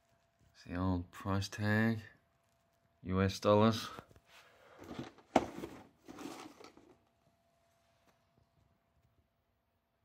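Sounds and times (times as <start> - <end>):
cardboard rubbing and scraping: 4.8 - 6.9.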